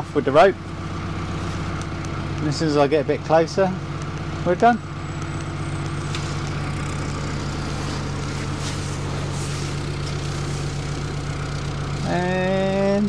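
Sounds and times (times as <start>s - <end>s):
boat engine idling: 0.0s - 13.0s.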